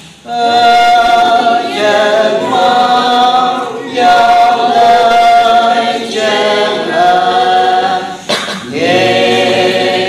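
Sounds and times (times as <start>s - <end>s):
choir singing a cappella: 0.2s - 10.0s.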